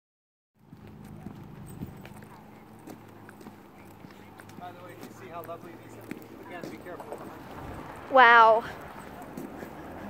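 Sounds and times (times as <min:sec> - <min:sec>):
footsteps on paved road: 0:00.6 - 0:10.0.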